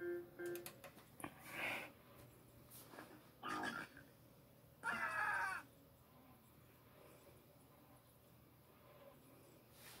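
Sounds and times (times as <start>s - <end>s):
high voice-like cries: 4.8s - 5.7s.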